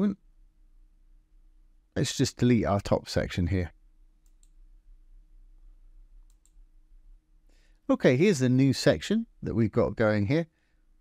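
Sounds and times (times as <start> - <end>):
low steady hum: 0.0 - 11.0
computer mouse clicks: 4.2 - 4.6, 6.2 - 6.7.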